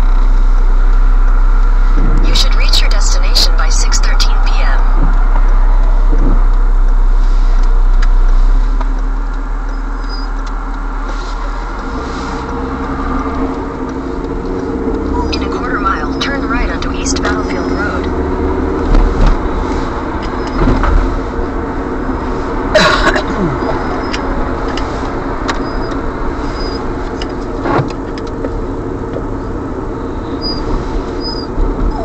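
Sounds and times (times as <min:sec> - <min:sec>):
steady hum: 0:00.0 - 0:09.5, 0:14.8 - 0:18.5
car engine and road noise: 0:00.0 - 0:32.0
heavy low rumble: 0:00.0 - 0:32.0.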